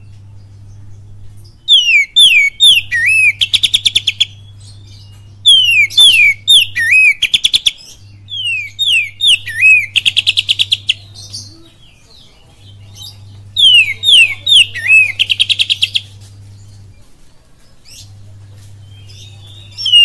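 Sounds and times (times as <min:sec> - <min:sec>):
bird singing whistles and trill: 0:01.7 - 0:12.0, 0:13.6 - 0:16.1, 0:18.9 - 0:20.0.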